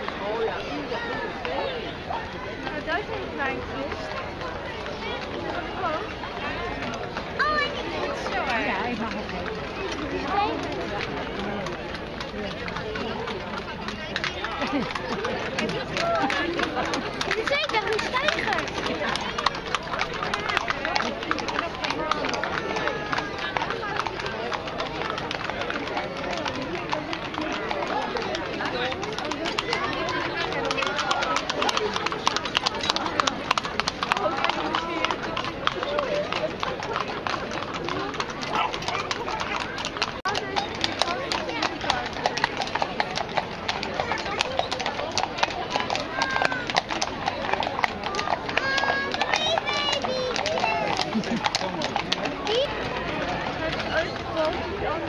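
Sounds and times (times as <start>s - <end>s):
crowd chatter: 0.0s - 55.0s
hooves clip-clopping on bricks: 1.0s - 55.0s.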